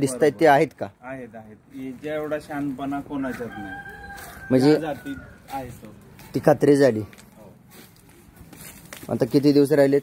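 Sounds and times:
rooster crowing faintly: 0:03.2 - 0:05.9.

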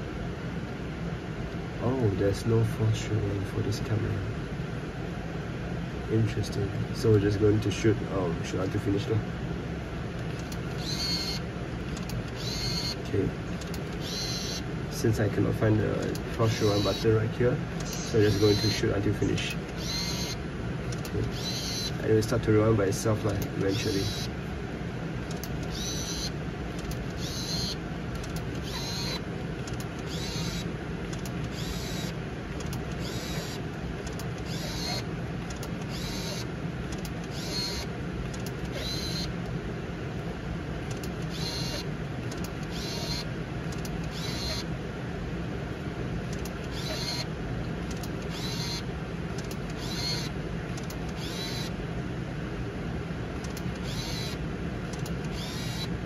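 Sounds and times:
camera film winding whirr: 0:10.3 - 0:13.0, 0:13.6 - 0:14.6, 0:17.8 - 0:18.8, 0:19.7 - 0:22.0, 0:25.2 - 0:39.3, 0:40.9 - 0:44.6, 0:46.3 - 0:47.3, 0:47.9 - 0:48.8, 0:49.4 - 0:51.7, 0:53.4 - 0:55.9.

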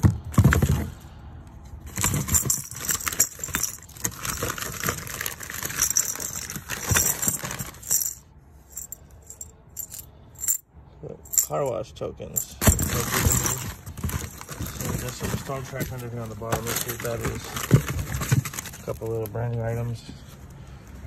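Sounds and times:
metal tokens clinking: 0:01.8 - 0:10.6, 0:11.2 - 0:11.7, 0:12.4 - 0:19.0
newspaper crinkling: 0:13.8 - 0:19.3.

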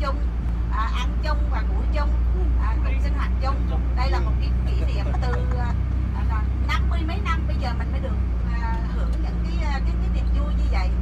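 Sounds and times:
bus engine droning: 0:00.0 - 0:11.0
people talking: 0:00.0 - 0:11.0.

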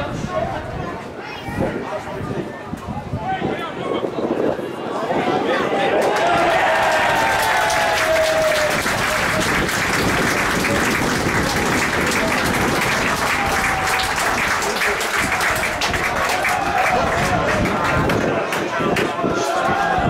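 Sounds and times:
crowd clapping and cheering: 0:05.6 - 0:20.0.

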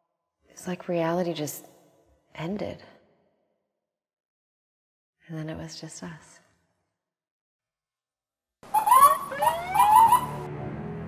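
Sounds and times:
emergency siren yelping: 0:08.7 - 0:10.5.

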